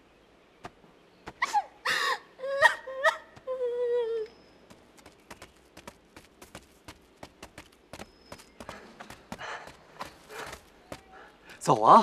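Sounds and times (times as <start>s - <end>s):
woman crying and sobbing: 1.4s - 4.3s.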